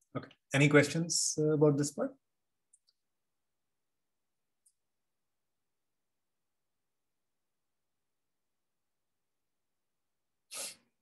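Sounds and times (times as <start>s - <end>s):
person's sharp breath burst: 10.5s - 10.9s.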